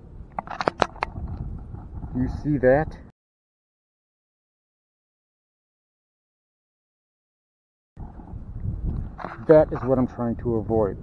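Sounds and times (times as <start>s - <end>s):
low steady rumble: 8.0s - 11.0s.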